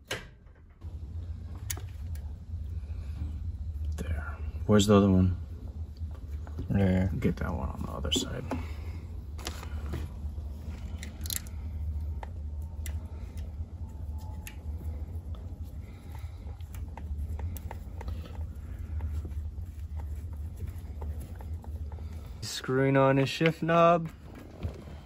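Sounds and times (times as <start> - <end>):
steady low hum: 0.1 - 25.0.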